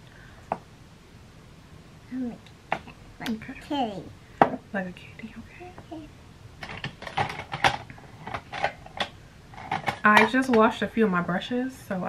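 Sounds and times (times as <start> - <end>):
plastic items clicking and clattering: 6.6 - 10.4.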